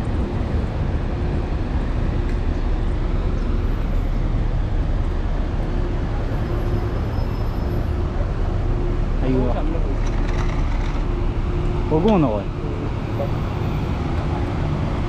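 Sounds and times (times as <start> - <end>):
motor vehicle rumble: 0.0 - 15.0.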